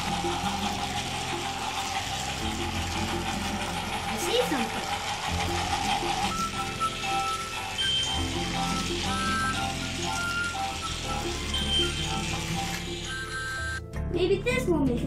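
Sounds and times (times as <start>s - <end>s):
background music melody: 0.0s - 15.0s.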